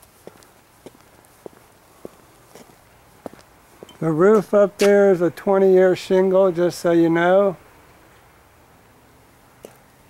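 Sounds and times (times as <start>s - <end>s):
faint footsteps: 0.0s - 5.2s.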